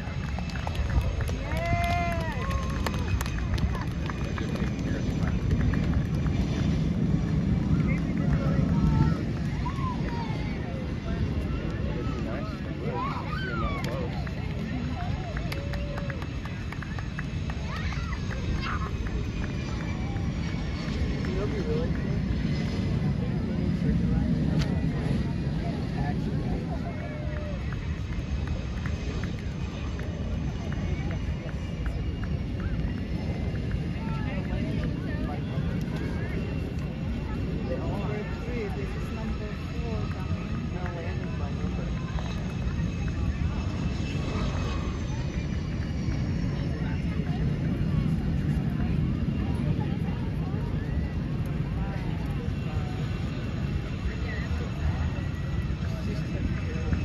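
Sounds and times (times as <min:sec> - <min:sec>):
crowd chatter: 0:00.0 - 0:57.0
jet engine rumble and whine: 0:00.0 - 0:57.0.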